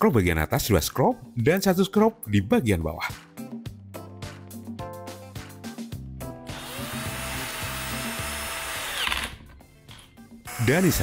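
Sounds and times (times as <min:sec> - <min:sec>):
electric screwdriver motor whine: 0:06.5 - 0:09.4, 0:10.5 - 0:11.0.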